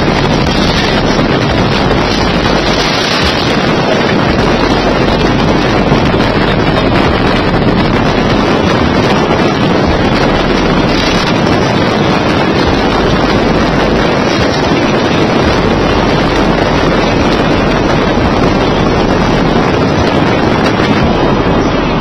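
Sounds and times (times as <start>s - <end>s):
truck road noise at speed: 0.0s - 22.0s
wind buffeting microphone: 0.0s - 22.0s.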